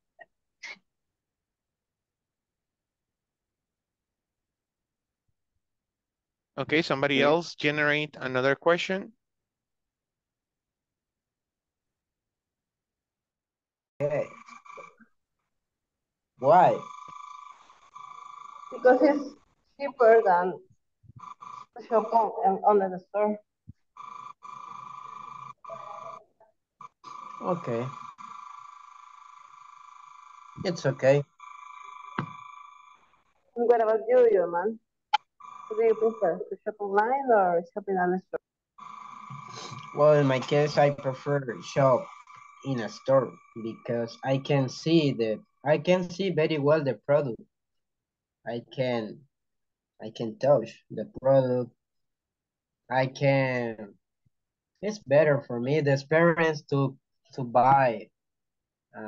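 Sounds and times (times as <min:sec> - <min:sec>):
high pulsing electronic tone: 0:30.6 - 0:31.2, 0:38.8 - 0:46.4.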